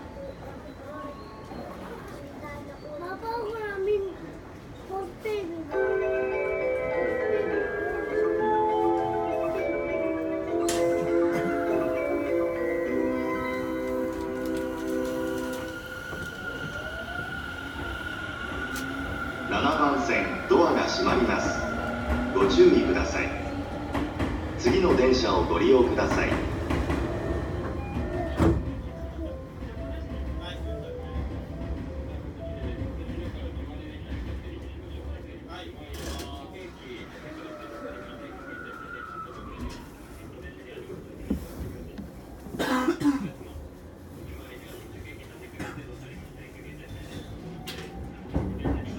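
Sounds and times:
faint voices: 0.0s - 48.9s
steady high tone: 5.7s - 26.2s
chiming station departure melody: 5.7s - 33.3s, 37.1s - 39.6s
train cab low hum: 6.8s - 35.8s.

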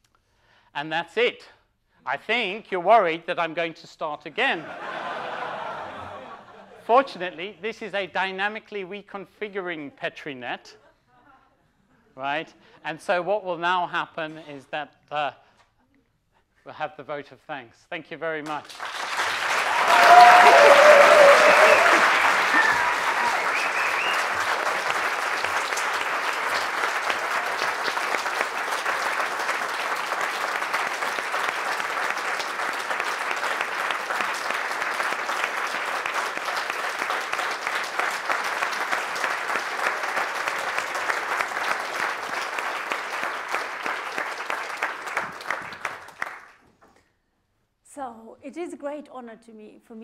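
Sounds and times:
audience applauding: 18.5s - 46.6s.

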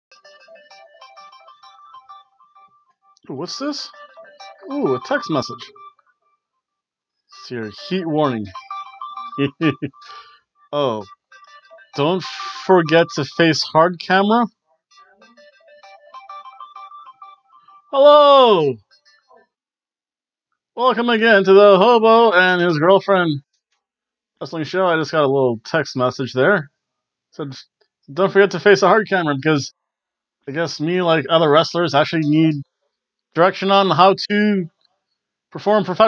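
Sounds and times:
phone ringtone melody: 0.1s - 2.8s, 3.4s - 6.0s, 7.6s - 13.6s, 15.2s - 19.0s
phone message alert tone: 3.4s - 5.7s, 7.4s - 8.6s, 12.0s - 14.4s, 18.0s - 18.7s.

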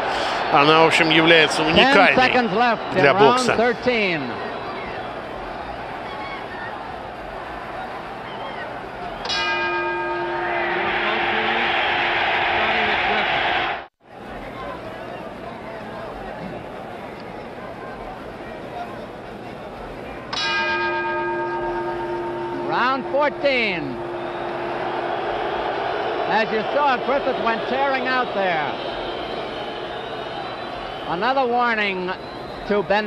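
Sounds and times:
arena crowd cheering: 0.0s - 16.2s, 20.6s - 33.0s
boxing ring bell: 9.2s - 11.7s, 20.4s - 25.3s.

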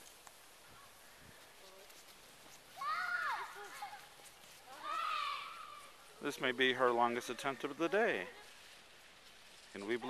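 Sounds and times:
quiet outdoor background: 0.0s - 10.0s
child calling out: 4.8s - 5.8s.

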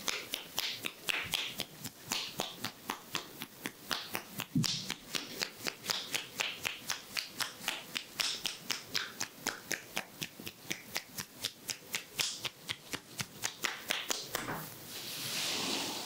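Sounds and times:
hands clapping in head massage: 0.0s - 14.6s.

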